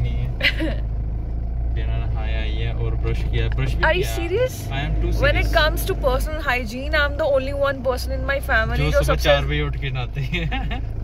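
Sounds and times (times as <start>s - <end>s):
car engine rumble: 0.0s - 11.0s
road noise inside car: 0.0s - 11.0s
woman laughing: 0.4s - 0.8s, 10.4s - 11.0s.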